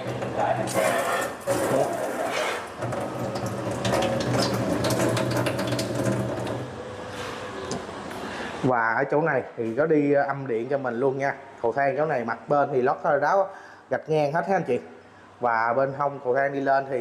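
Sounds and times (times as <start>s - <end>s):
low mechanical hum: 0.0s - 17.0s
water spraying from tap into sink: 0.7s - 6.7s.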